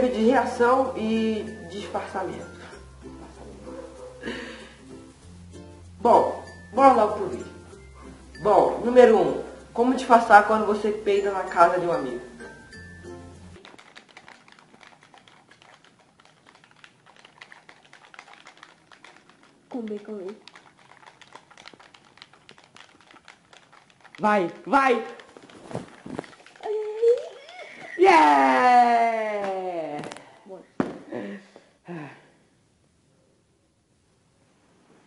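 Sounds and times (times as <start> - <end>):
game controller buttons clicking: 13.6 - 24.4.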